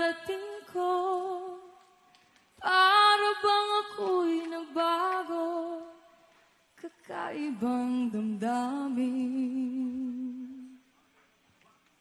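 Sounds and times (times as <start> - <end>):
woman singing with vibrato: 0.0 - 1.8, 2.6 - 6.1, 6.8 - 10.8.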